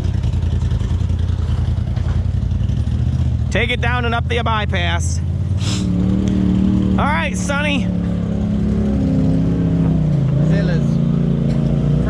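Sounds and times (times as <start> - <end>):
utility vehicle engine revving: 0.0 - 12.0.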